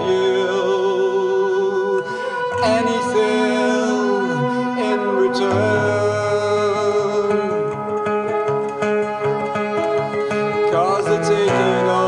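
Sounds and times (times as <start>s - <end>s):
acoustic guitar strumming: 0.0s - 12.0s
electric keyboard chords: 0.0s - 12.0s.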